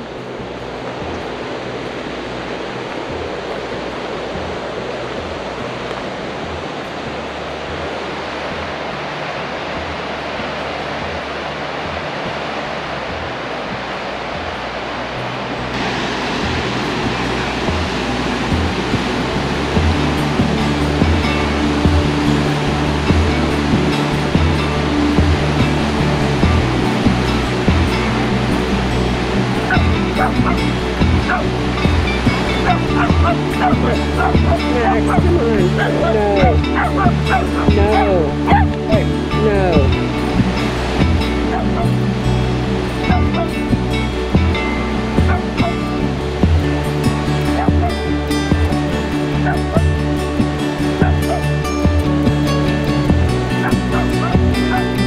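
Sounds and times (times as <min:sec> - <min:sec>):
background music with steady beat: 0:00.0 - 0:55.0
whitewater rapids rushing: 0:00.0 - 0:55.0.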